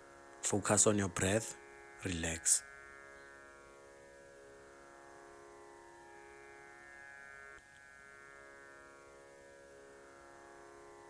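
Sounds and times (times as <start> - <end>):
string drone music: 0.0 - 11.0
small click: 7.6 - 7.9.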